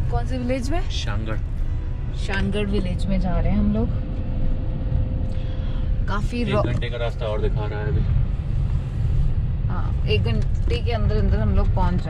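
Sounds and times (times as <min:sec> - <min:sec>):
car engine and tyres rumbling: 0:00.0 - 0:12.0.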